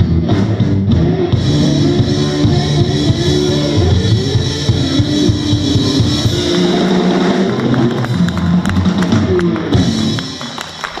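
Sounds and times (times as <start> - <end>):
blues band playing: 0.0 - 11.0
amplified harmonica: 1.4 - 7.1.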